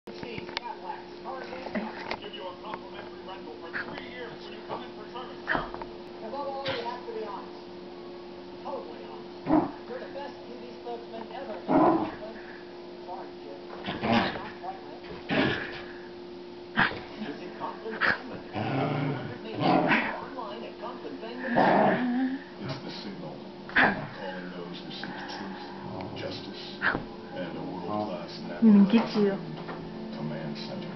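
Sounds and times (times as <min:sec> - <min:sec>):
small dog growling and barking: 0:09.4 - 0:09.9, 0:11.6 - 0:12.2, 0:13.8 - 0:14.5, 0:15.2 - 0:15.8, 0:18.0 - 0:20.2, 0:21.5 - 0:22.2.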